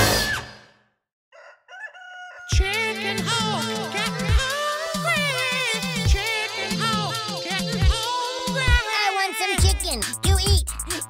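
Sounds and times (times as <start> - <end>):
rooster crowing: 1.3 - 2.7.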